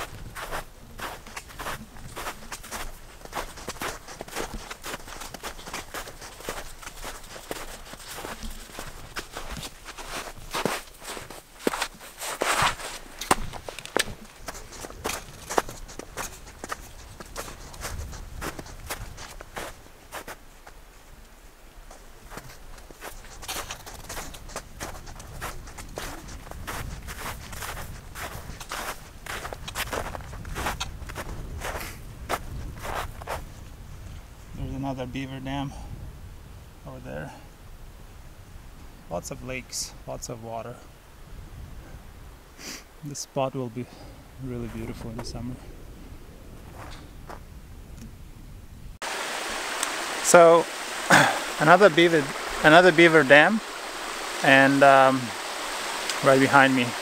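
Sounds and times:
footsteps crunching through snow: 0.0 - 21.0, 21.8 - 33.7, 44.4 - 45.6, 46.6 - 47.5, 49.0 - 57.0.

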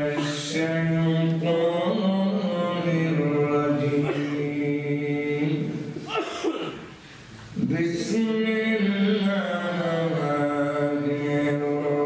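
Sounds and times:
man chanting into microphone: 0.0 - 6.1, 7.6 - 12.0.

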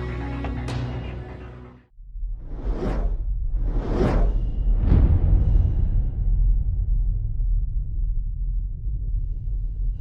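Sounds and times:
deep rumble: 1.9 - 10.0
whooshes: 2.4 - 6.7.

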